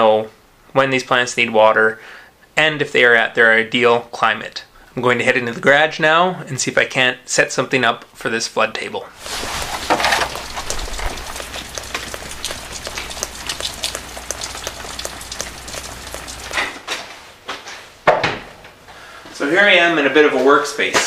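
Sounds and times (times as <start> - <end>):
rain pattering: 9.2 - 16.8.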